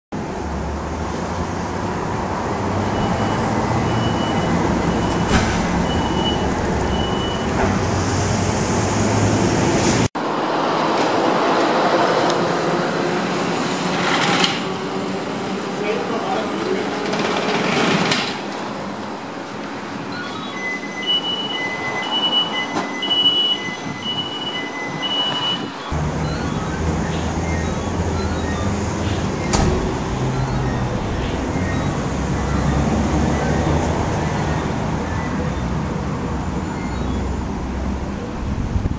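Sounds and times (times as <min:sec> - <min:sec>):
two-tone electronic beeps: 0:02.8 - 0:07.6, 0:19.9 - 0:37.5
voices: 0:14.6 - 0:18.1.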